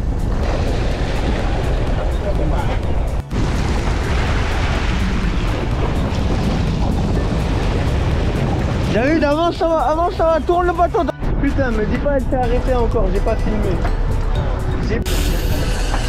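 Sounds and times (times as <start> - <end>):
water churning and splashing: 0.0 - 11.2
boat engine hum: 0.0 - 11.4
wind buffeting: 0.0 - 16.0.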